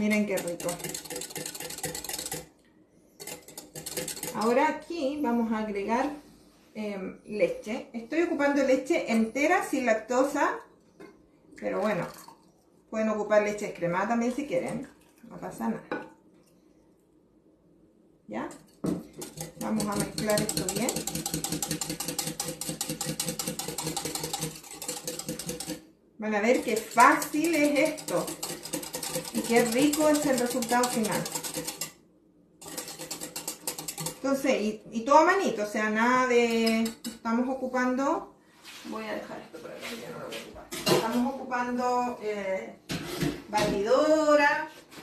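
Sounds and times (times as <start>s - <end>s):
whisk clicking against glass: 0.3s - 2.5s, 19.1s - 25.8s, 26.6s - 32.0s, 32.6s - 34.2s.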